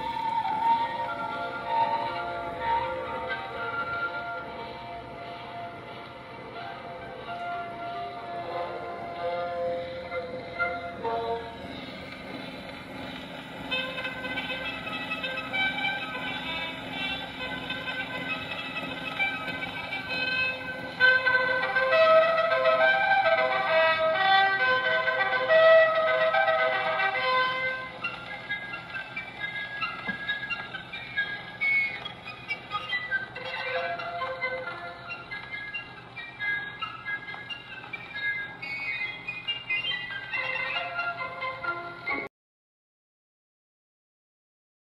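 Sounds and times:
music from a phonograph record: 0:00.0 - 0:42.3.

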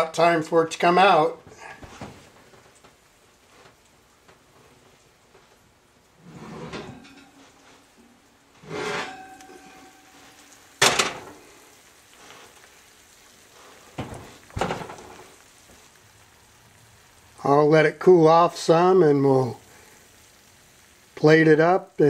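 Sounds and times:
dish clanking on stovetop: 0:06.2 - 0:07.7, 0:08.6 - 0:11.4, 0:14.0 - 0:15.2
metal dish scraping in oven: 0:06.2 - 0:11.4
oven door knocks: 0:14.0 - 0:15.0.

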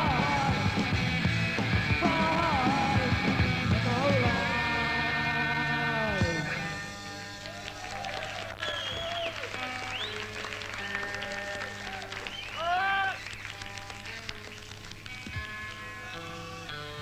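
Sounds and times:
crowd shouts and whistles: 0:07.4 - 0:13.4
held guitar notes: 0:09.5 - 0:17.0.

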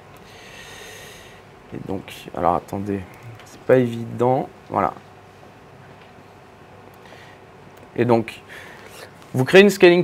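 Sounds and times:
breath close to microphone: 0:00.2 - 0:01.5
man speaking: 0:01.7 - 0:05.0, 0:08.0 - 0:08.5, 0:09.3 - 0:10.0.

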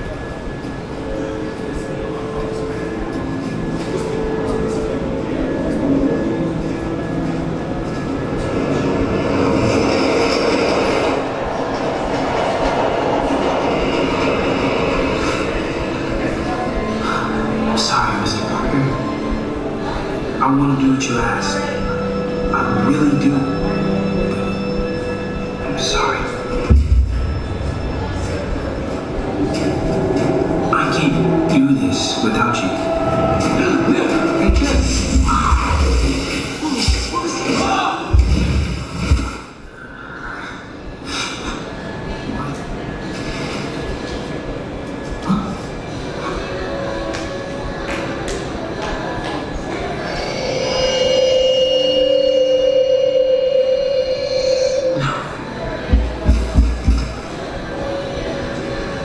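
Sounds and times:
faint film music: 0:00.0 - 0:59.0
steady low rumble: 0:00.0 - 0:59.0
action sound effects rumble: 0:26.7 - 0:37.2.

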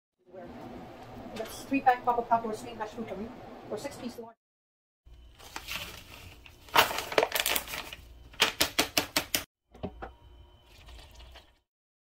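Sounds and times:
pouch rustling and crinkling: 0:05.4 - 0:08.0.

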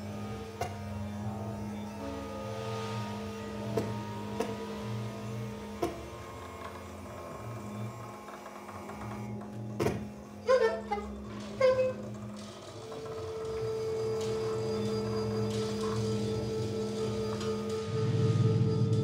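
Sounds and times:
low drone with pulsing throb: 0:00.0 - 0:19.0.

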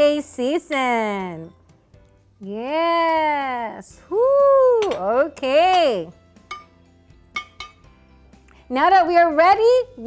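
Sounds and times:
faint background music: 0:00.0 - 0:10.0
metal spoon clinking on skillet: 0:04.8 - 0:08.0.

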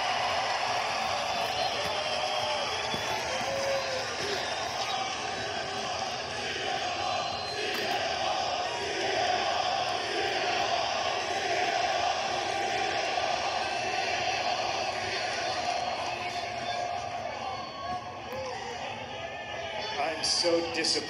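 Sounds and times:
arena crowd din: 0:00.0 - 0:21.0.

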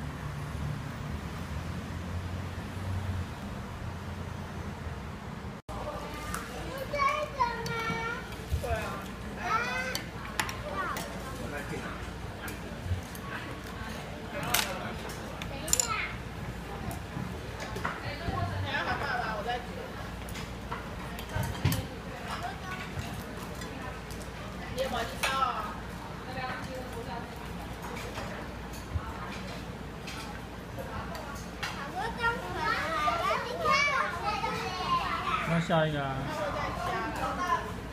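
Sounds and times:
children talking: 0:05.7 - 0:37.9
murmur of voices: 0:05.7 - 0:37.9
chopsticks and dishes clinking: 0:14.4 - 0:16.2.

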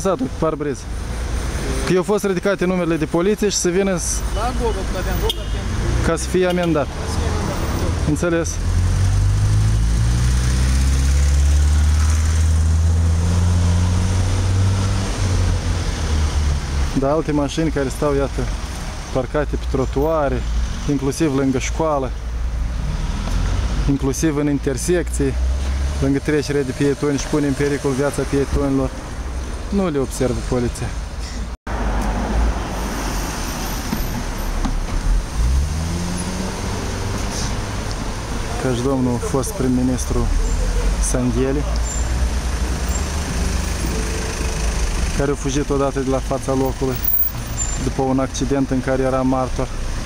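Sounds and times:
cars driving past slowly: 0:00.0 - 0:50.0.

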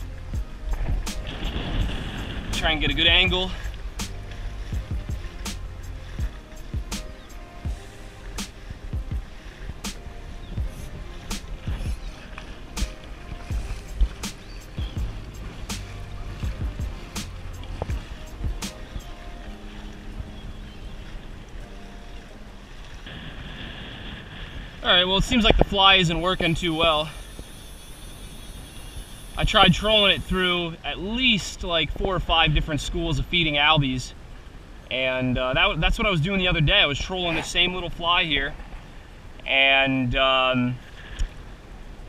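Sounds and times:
held synth notes: 0:00.0 - 0:23.2, 0:25.0 - 0:31.2
drum hits: 0:04.8 - 0:05.6, 0:06.2 - 0:10.0, 0:10.6 - 0:12.0, 0:12.8 - 0:18.9.

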